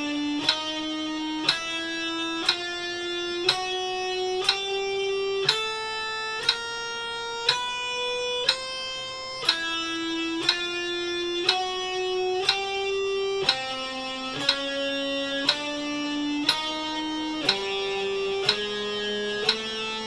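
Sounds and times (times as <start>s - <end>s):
electric guitar picked notes: 0.0s - 20.0s.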